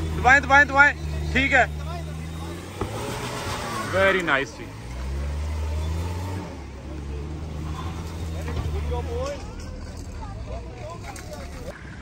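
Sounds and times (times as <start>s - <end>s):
car engine under throttle: 0.0s - 11.7s
tyres scrabbling on dirt: 0.0s - 12.0s.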